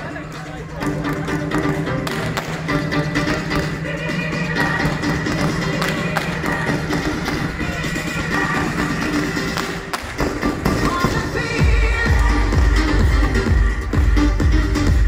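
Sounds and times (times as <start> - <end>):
loud recorded music: 0.0 - 15.0
fireworks crackling and popping: 9.4 - 11.5.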